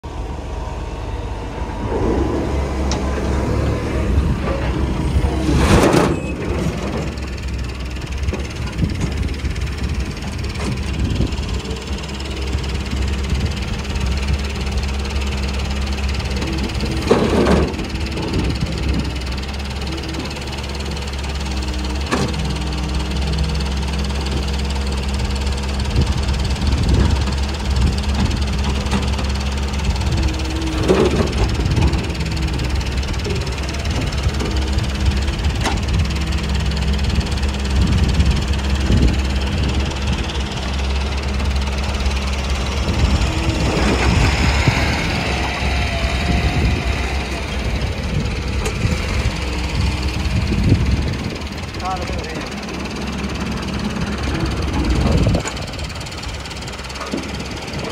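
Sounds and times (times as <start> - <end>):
excavator diesel engine running: 0.0 - 57.9
excavator clattering: 0.1 - 57.9.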